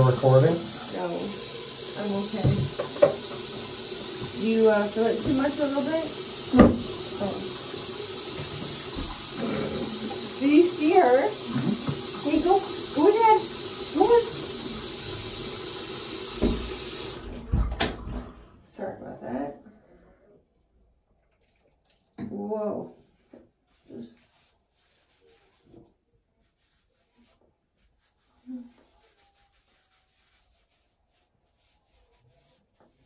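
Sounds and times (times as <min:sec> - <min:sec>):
tap running into a sink: 0:00.0 - 0:18.2
door thudding shut: 0:06.6 - 0:06.9
pad rubbing against face: 0:23.2 - 0:33.0.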